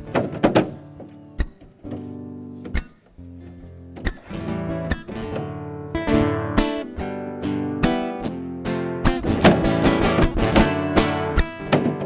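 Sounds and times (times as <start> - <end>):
hard foot stamp: 0.0 - 3.2, 9.2 - 12.0
strummed acoustic guitar: 0.0 - 12.0
boot heels striking stage floor: 11.6 - 12.0.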